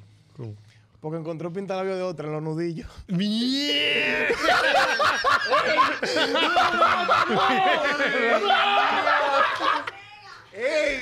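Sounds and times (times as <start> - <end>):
group of people laughing: 3.9 - 10.1.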